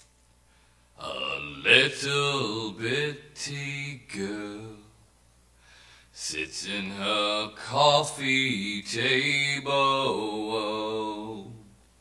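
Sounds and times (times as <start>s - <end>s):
man chanting in long tones: 1.0s - 5.0s, 6.1s - 11.7s.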